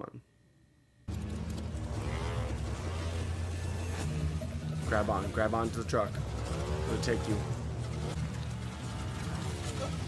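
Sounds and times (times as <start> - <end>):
soundtrack music: 1.1 - 10.0
truck engine running: 1.1 - 10.0.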